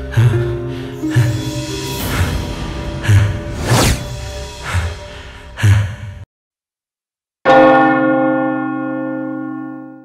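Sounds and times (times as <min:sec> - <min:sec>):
dramatic trailer music: 0:00.0 - 0:06.2.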